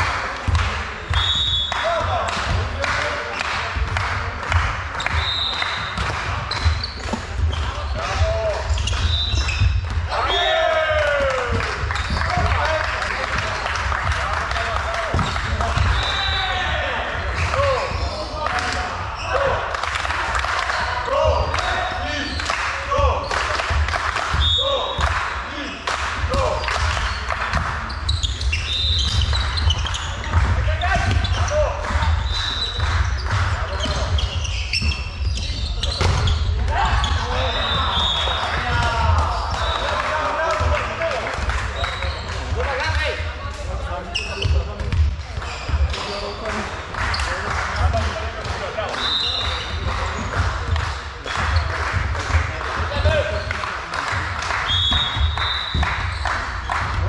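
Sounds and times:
shoe squeaks: 1.2 - 1.8, 5.0 - 9.8, 15.2 - 16.7, 17.6 - 18.4, 19.1 - 19.5, 26.6 - 40.0, 41.8 - 42.4, 44.0 - 46.4, 49.0 - 50.4, 54.7 - 56.8
players calling out: 5.0 - 19.7, 28.0 - 46.4
volleyball thuds: 26.2 - 39.8.

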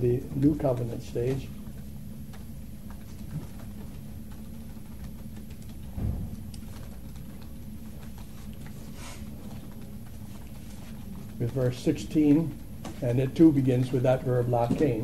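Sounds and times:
soft low thump: 6.0 - 6.4.

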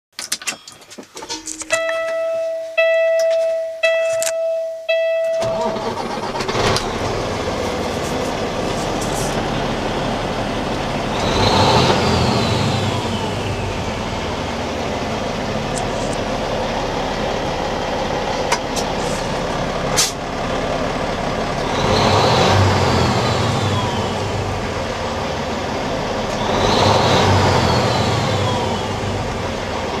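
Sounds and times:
engine revving with whine: 5.4 - 14.8, 21.6 - 25.4, 26.2 - 30.0
diesel truck engine idling: 5.4 - 30.0.

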